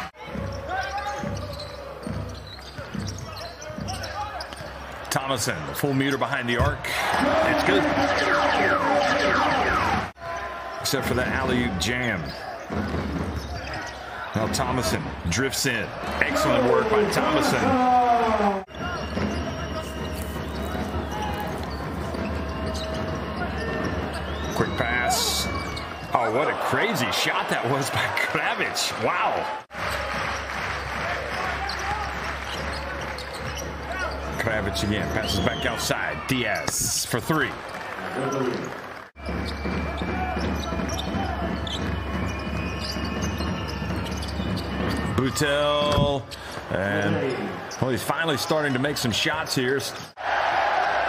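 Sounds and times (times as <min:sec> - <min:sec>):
commentator's voice: 0:05.1 - 0:10.1, 0:14.3 - 0:18.6.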